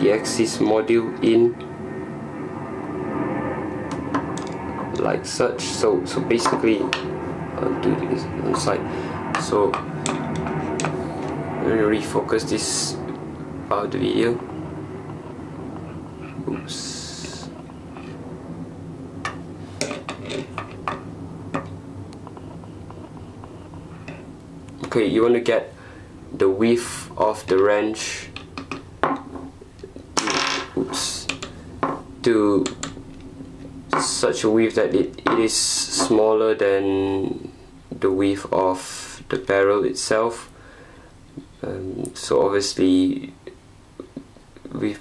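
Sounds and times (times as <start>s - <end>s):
steady background hum: 0.0s - 45.0s.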